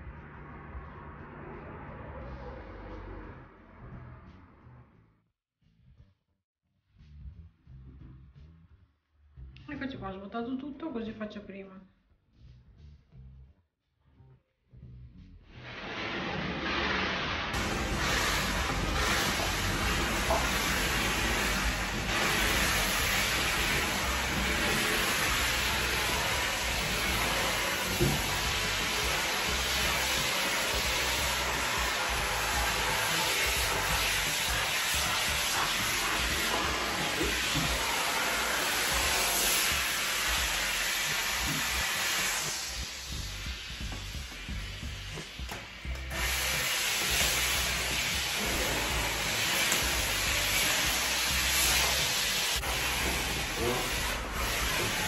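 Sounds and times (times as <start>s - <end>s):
steam cleaner hissing: 15.6s - 55.0s.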